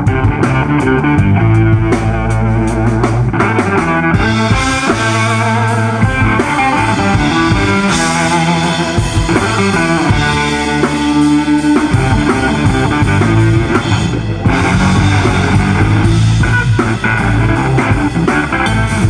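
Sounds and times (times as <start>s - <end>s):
live rock band playing: 0.0s - 19.0s.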